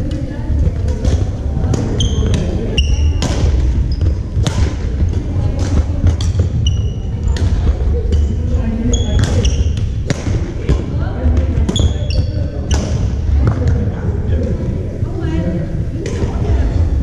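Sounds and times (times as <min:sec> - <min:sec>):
steady low rumble: 0:00.0 - 0:11.7
rackets striking shuttlecock: 0:00.1 - 0:10.9
sneakers squeaking on hardwood: 0:01.9 - 0:07.5, 0:08.1 - 0:09.9, 0:11.7 - 0:12.9.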